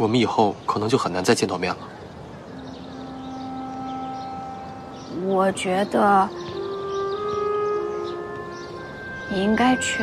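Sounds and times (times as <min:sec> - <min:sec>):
soft sustained background music: 0:02.4 - 0:10.0.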